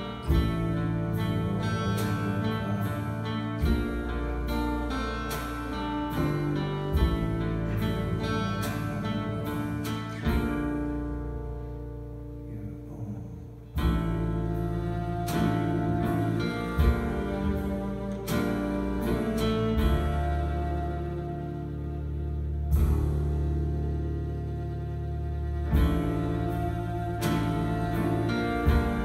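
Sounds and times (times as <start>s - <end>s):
deep guitar chords ringing: 0.0s - 29.0s
live band playing slow song: 0.0s - 29.0s
picked guitar notes: 0.0s - 29.0s.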